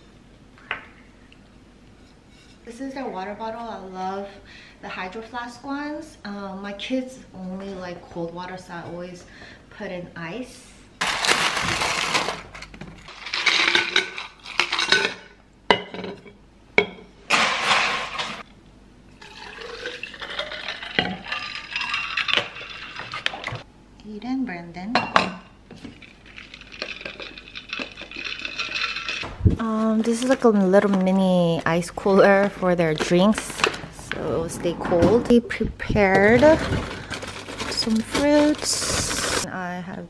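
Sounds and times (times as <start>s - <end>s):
ice cubes clattering into bottles: 11.0s - 15.2s, 17.3s - 18.4s, 19.2s - 23.6s, 25.9s - 29.2s, 36.2s - 39.5s
water pouring into steel bottles: 19.2s - 23.6s.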